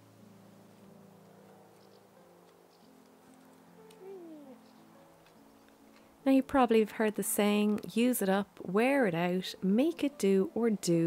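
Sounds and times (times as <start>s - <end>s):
quiet background music: 0.0s - 11.0s
animal call falling in pitch: 4.0s - 4.6s.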